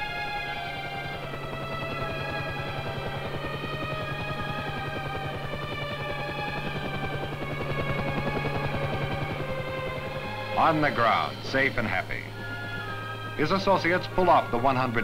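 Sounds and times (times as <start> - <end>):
sustained music chords: 0.0 - 15.0.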